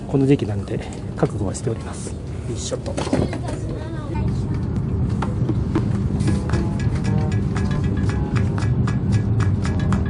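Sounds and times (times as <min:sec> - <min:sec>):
people talking in background: 0:00.0 - 0:06.7
train interior hum: 0:00.0 - 0:10.0.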